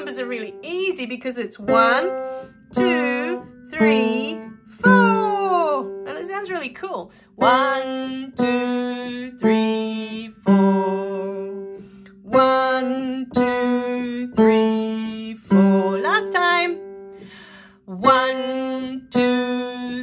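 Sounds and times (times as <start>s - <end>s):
piano notes stepping down: 0.0s - 20.0s.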